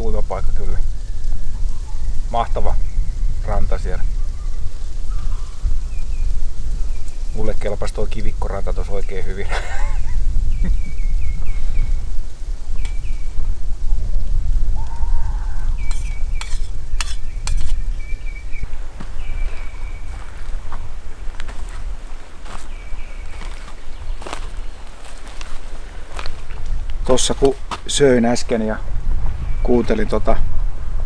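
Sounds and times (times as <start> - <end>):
wind on microphone: 0.0 - 31.0
high chirping calls: 10.4 - 12.1, 14.8 - 20.8, 22.4 - 26.6.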